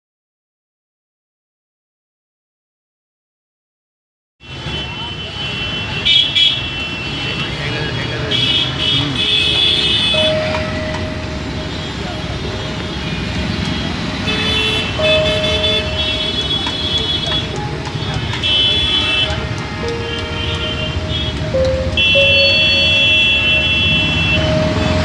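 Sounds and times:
street traffic: 4.4 - 25.0
vehicle horns: 4.4 - 25.0.

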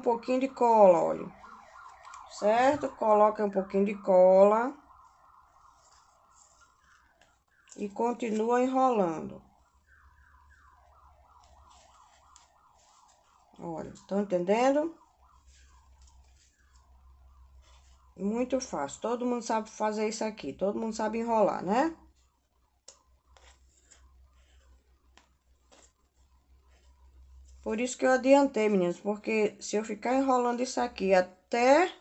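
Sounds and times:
yarn rustling on cardboard: 4.9 - 19.0, 20.8 - 27.9
yarn scraping over cardboard: 11.3 - 14.2, 23.3 - 24.9, 25.6 - 27.7.

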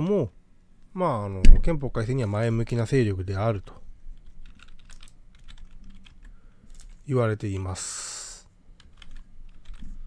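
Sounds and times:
faint low hum: 0.0 - 10.0
computer keyboard typing: 3.6 - 7.0, 8.8 - 10.0.

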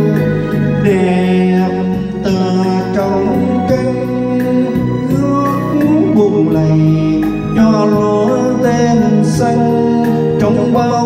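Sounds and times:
backing music with sustained chords: 0.0 - 11.0
man singing a slow ballad: 0.0 - 11.0.

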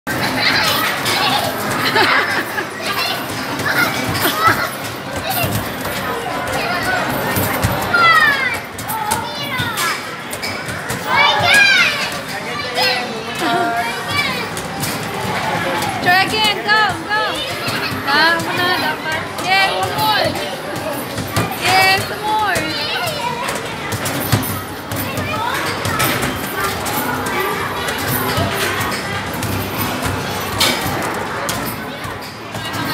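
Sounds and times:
busy arcade noise: 0.1 - 32.9
children's voices and chatter: 0.1 - 32.9.

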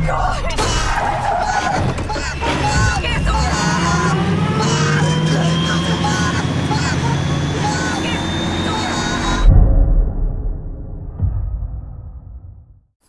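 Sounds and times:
street chaos noise: 0.0 - 9.5
vehicle sound: 1.0 - 9.5
faint steady tones: 1.7 - 9.5
low rumble: 8.3 - 12.9
deep loud boom: 9.4 - 12.9.

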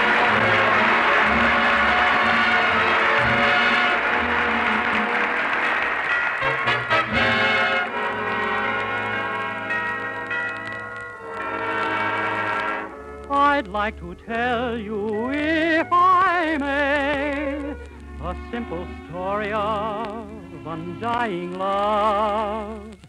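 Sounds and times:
audience applause: 0.0 - 10.3
orchestra playing ballad: 0.0 - 22.4.

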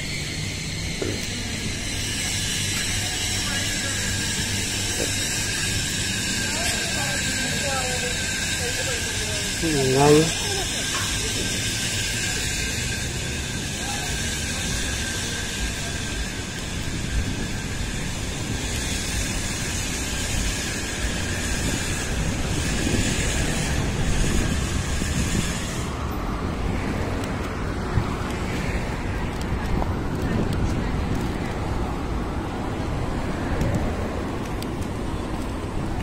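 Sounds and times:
traffic noise: 0.0 - 36.0
wind on microphone: 16.3 - 34.7.

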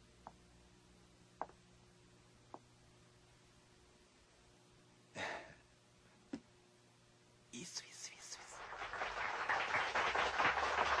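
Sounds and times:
man whispering: 7.5 - 8.7.

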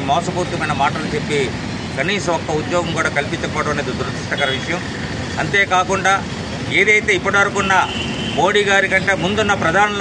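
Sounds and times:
man speaking into microphones: 0.0 - 10.0.

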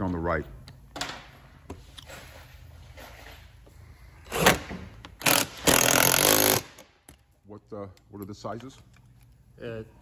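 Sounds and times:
scraping and handling of parts: 0.0 - 5.2.

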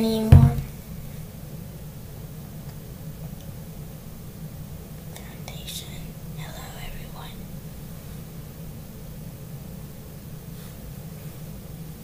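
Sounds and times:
steady low hum: 0.0 - 12.0
person whispering: 5.2 - 7.4.

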